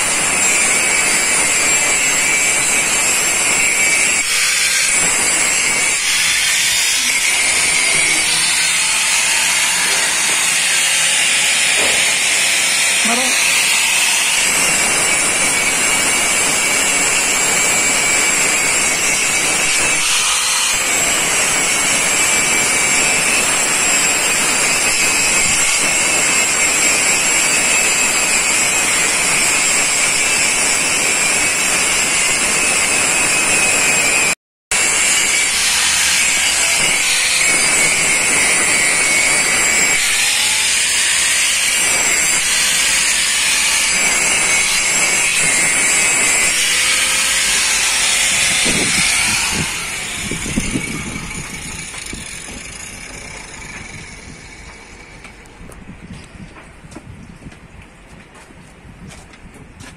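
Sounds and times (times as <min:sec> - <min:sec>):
angle grinder grinding steel: 0:00.0 - 0:56.4.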